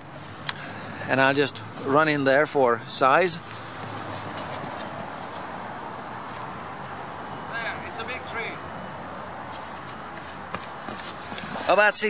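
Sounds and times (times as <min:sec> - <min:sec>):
footsteps on outdoor ground: 0:03.4 - 0:06.9, 0:09.1 - 0:12.0.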